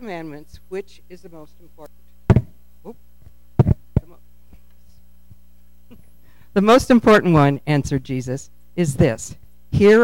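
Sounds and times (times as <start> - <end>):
electrical mains hum: 0.0 - 10.0
microphone handling knocks: 2.2 - 2.6, 3.2 - 6.0.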